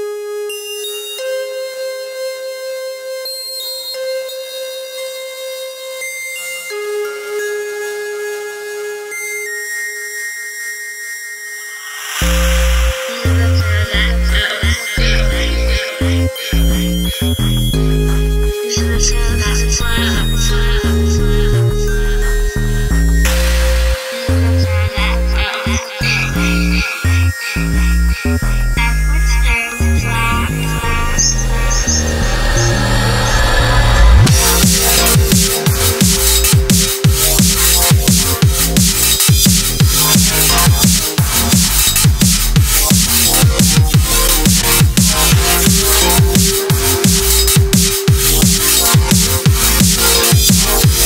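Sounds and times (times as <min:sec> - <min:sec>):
high thin synth tones: 0:11.6 - 0:14.0, 0:30.6 - 0:51.0
electronic drum and bass track: 0:12.0 - 0:51.0.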